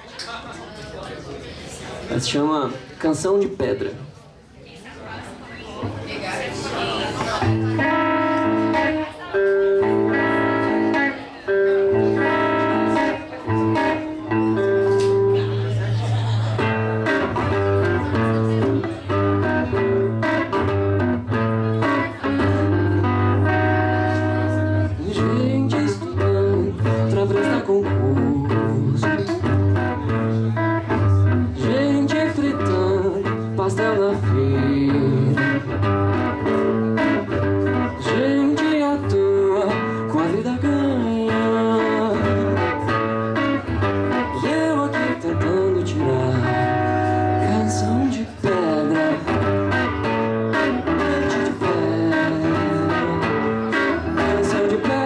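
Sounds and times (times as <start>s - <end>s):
electric guitar picking notes: 7.4s - 55.0s.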